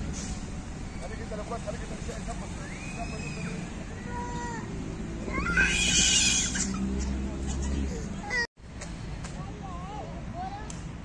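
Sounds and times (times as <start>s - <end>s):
harsh animal cry: 5.4s - 7.0s.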